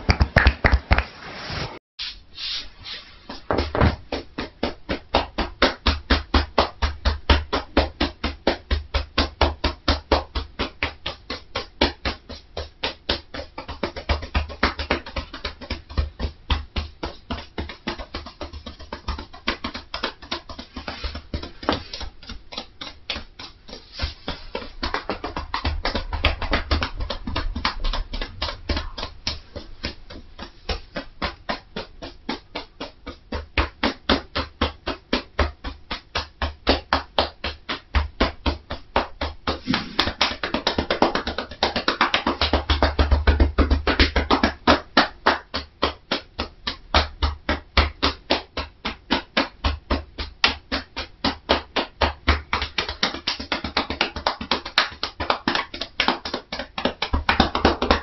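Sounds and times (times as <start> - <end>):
hands tapping on head: 0.0 - 1.0, 3.3 - 58.0.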